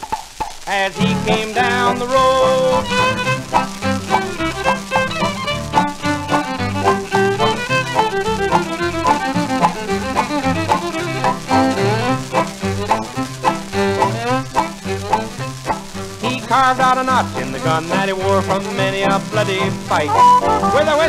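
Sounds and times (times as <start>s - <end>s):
old record of western song: 0.0s - 21.0s.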